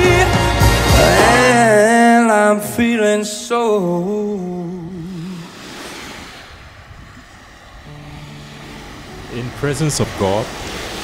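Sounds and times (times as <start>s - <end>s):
person singing: 0.0s - 5.5s
sea surf rushing: 0.0s - 11.0s
low held note: 7.8s - 10.2s.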